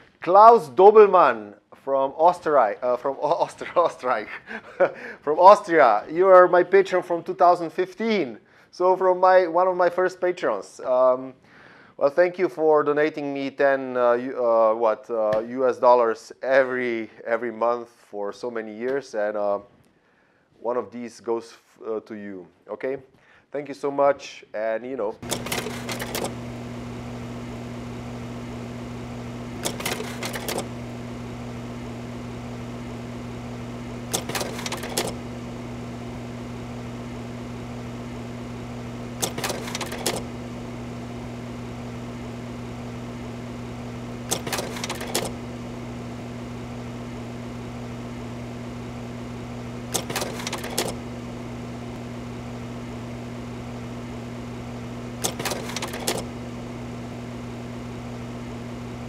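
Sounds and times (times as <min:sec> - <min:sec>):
rapid mechanical clattering: 0:25.2 - 0:26.8, 0:29.4 - 0:30.9, 0:33.0 - 0:36.1, 0:38.8 - 0:41.4, 0:43.9 - 0:46.4, 0:49.6 - 0:52.0, 0:54.7 - 0:56.5
steady low hum: 0:25.2 - 0:59.0.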